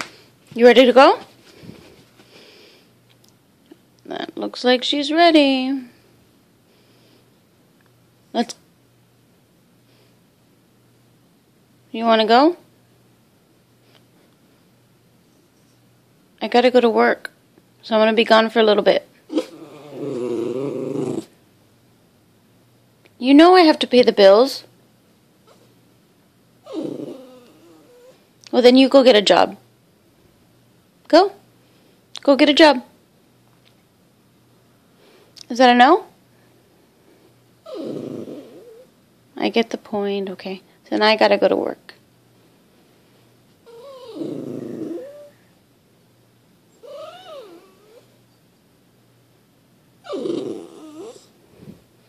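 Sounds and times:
dog whining: 19.3 - 21.4, 26.6 - 28.2, 37.6 - 38.9, 43.6 - 45.5, 46.7 - 48.4, 50.0 - 51.4.

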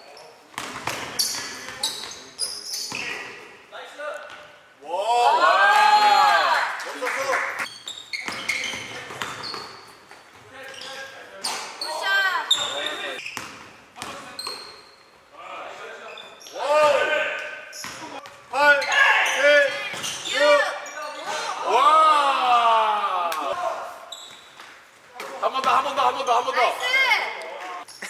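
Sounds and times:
sneakers squeaking: 0.0 - 4.7, 7.6 - 15.3, 15.9 - 21.3, 23.9 - 28.0
basketball bouncing on hardwood court: 8.2 - 9.8, 13.4 - 14.6.

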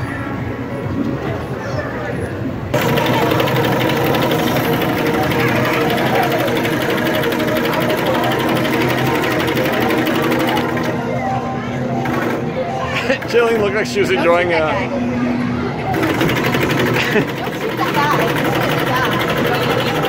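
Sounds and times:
rapid-fire video game gunshots: 2.7 - 11.1, 15.9 - 20.0.

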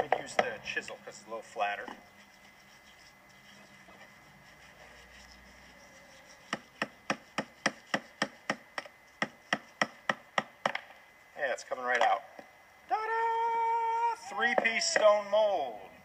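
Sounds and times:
chisel tapping on stone: 6.5 - 10.8.

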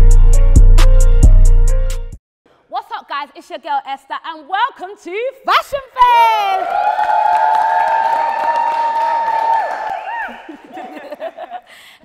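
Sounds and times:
high cheering shout: 6.0 - 11.1.

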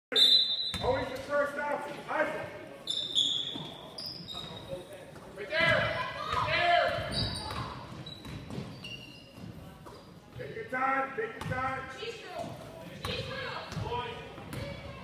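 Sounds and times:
shoe squeaks: 0.1 - 1.0, 2.8 - 5.0, 7.0 - 10.2.

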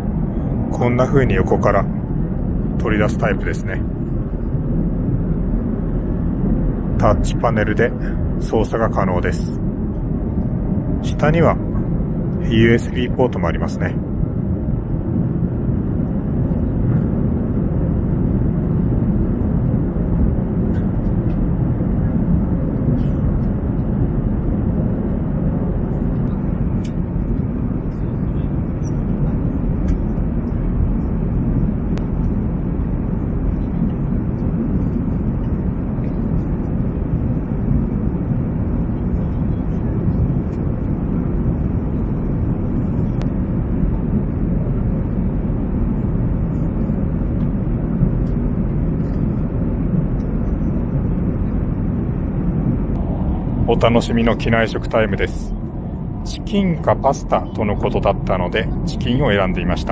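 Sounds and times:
airliner cabin rumble: 0.0 - 59.9.

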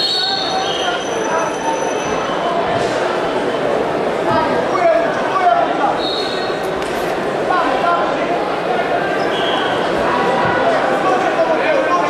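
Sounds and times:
crowd chattering and shouting: 0.0 - 12.0.

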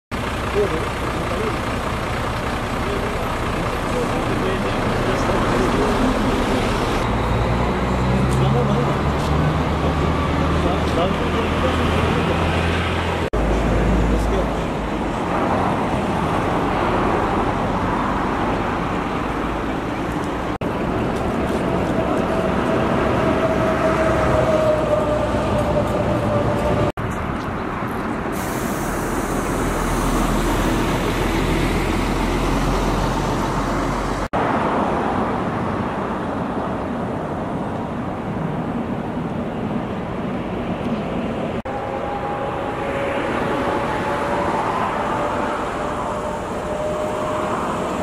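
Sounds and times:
heavy vehicle engine whine: 0.1 - 48.0
motorway traffic going by: 0.1 - 48.0.

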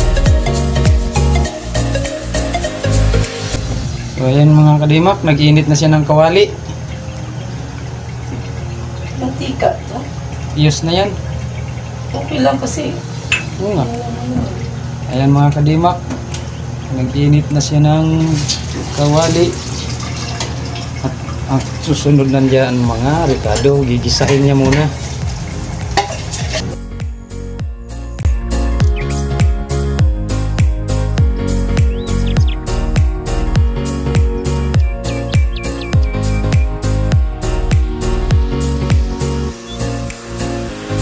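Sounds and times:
music: 0.0 - 11.3, 17.6 - 41.0
gas stove burner humming: 5.4 - 18.6
oil sizzling in a wok: 18.2 - 22.1, 22.7 - 26.7.

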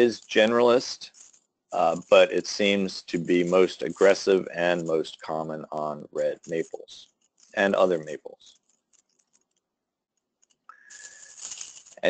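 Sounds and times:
thin steady tone: 0.0 - 1.1, 1.8 - 8.5
low hiss: 0.0 - 1.2, 1.8 - 8.5.

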